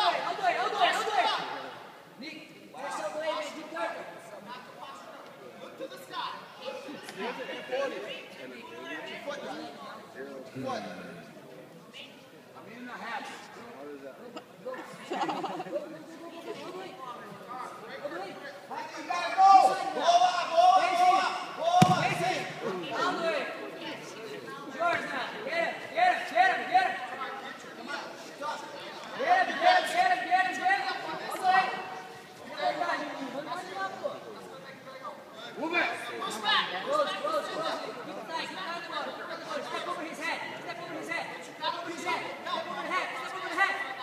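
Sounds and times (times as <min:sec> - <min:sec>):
voices talking in echoing hall: 0:00.0 - 0:44.0.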